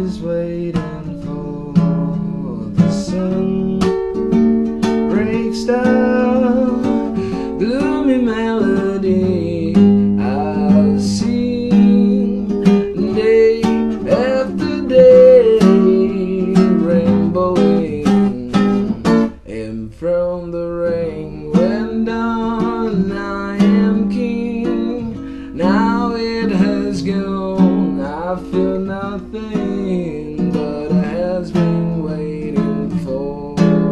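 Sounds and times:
acoustic guitar strumming: 0.0s - 33.9s
man singing: 0.0s - 33.9s.

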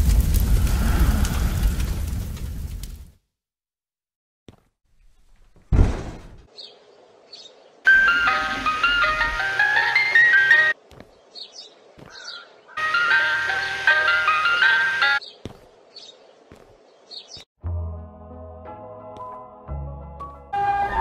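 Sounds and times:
ice cream truck jingle: 7.9s - 10.8s, 12.8s - 15.2s.

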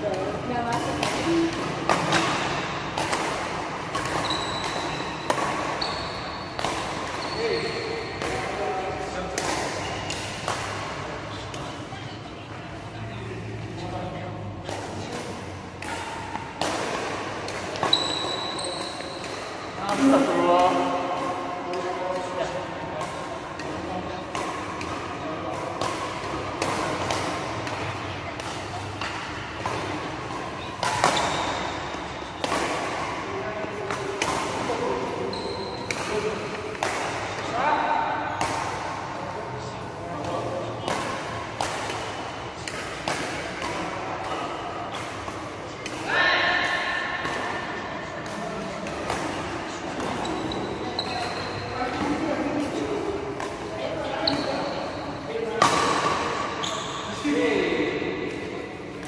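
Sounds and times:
rackets hitting shuttlecocks: 0.0s - 59.0s.

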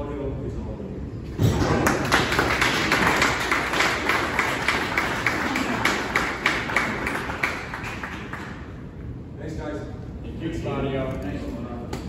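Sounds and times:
close hands clapping: 1.5s - 8.9s
small group applauding: 1.5s - 9.1s.

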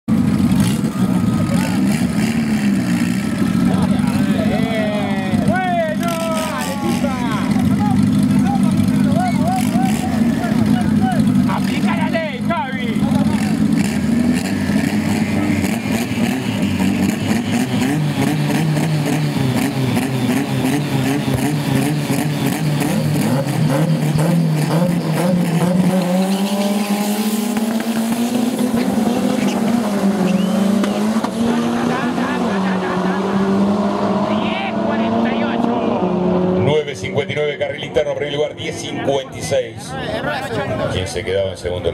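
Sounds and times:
race car engines revving: 0.1s - 41.9s.

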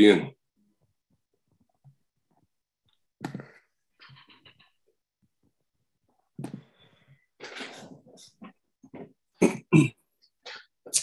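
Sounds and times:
man clearing his throat: 9.4s - 10.0s.

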